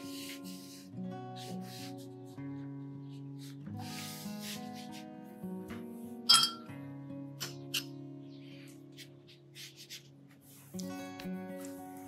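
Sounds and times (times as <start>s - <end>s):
acoustic guitar music: 0.0s - 12.0s
paintbrush clinking ceramic dish: 6.3s - 6.7s.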